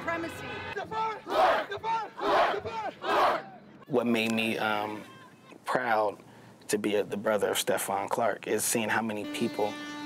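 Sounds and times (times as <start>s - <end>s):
crowd: 0.0s - 5.7s
man shouting: 0.8s - 4.1s.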